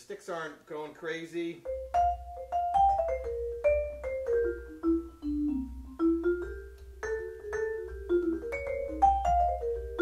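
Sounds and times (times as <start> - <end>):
vibraphone notes and chords: 1.6 - 10.0.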